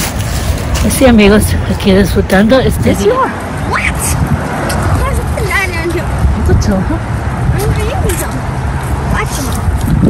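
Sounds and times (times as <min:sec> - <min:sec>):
loud low outdoor rumble: 0:00.0 - 0:10.0.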